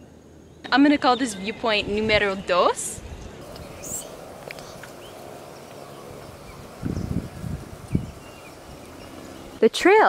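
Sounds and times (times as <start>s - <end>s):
faint bird chirps: 0.0s - 7.2s
low rumble on microphone: 1.7s - 9.6s.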